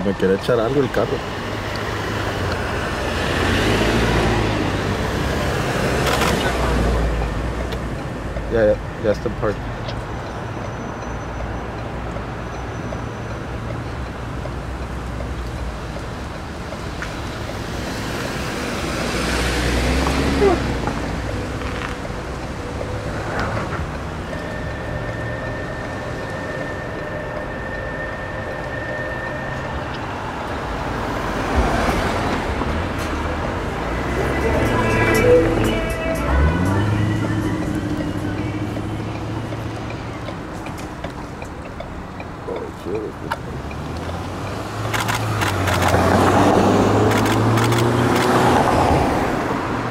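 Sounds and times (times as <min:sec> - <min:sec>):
street traffic rumble: 0:00.0 - 0:49.9
vehicle passing: 0:00.2 - 0:09.4, 0:13.6 - 0:49.9.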